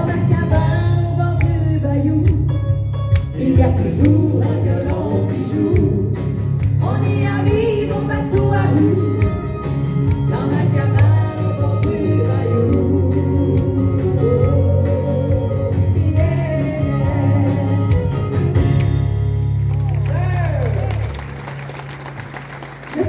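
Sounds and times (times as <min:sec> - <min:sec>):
woman singing into a microphone: 0:00.0 - 0:02.6, 0:03.4 - 0:09.6, 0:10.2 - 0:18.3
guitar accompaniment: 0:00.0 - 0:22.3.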